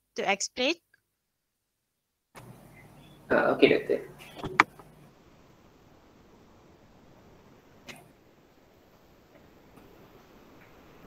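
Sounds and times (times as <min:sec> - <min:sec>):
faint microphone hiss: 0:02.4 - 0:11.0.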